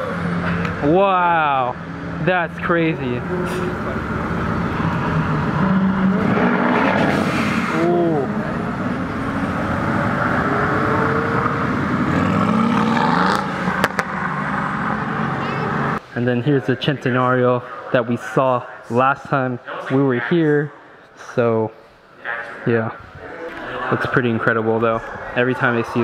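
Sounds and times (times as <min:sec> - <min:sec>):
voices: 0:00.0 - 0:12.3, 0:15.1 - 0:26.0
car engine accelerating: 0:00.0 - 0:16.0.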